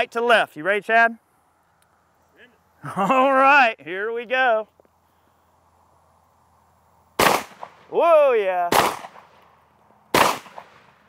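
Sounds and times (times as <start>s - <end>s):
shotgun shot: 7.2s - 7.9s, 8.7s - 9.4s, 10.1s - 11.0s.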